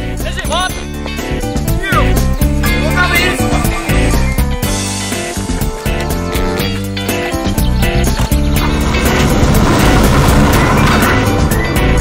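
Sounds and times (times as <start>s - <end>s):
background music with beat: 0.0s - 12.0s
car driving off: 8.2s - 12.0s.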